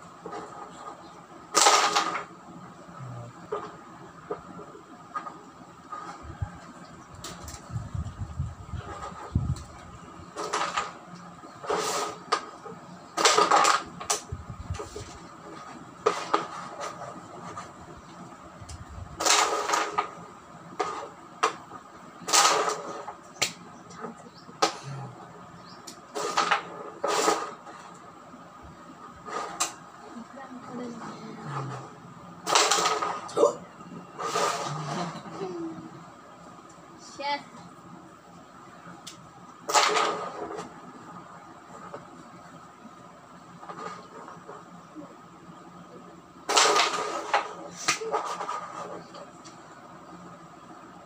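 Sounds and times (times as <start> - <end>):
carrom pieces clacking: 1.5 - 2.4, 8.8 - 24.8, 25.8 - 28.1, 29.3 - 29.8, 31.6 - 33.3, 39.1 - 40.9, 46.5 - 49.6.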